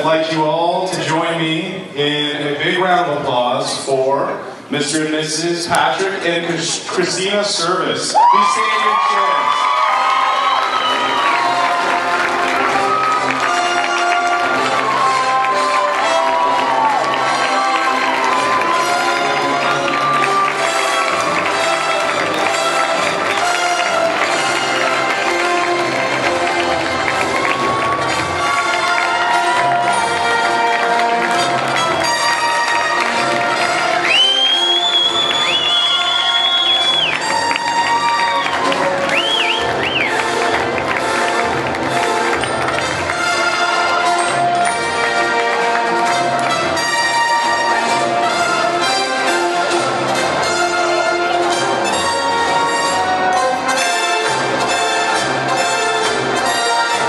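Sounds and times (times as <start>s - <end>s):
loud music: 7.2s - 57.0s
crowd clapping and cheering: 8.1s - 57.0s.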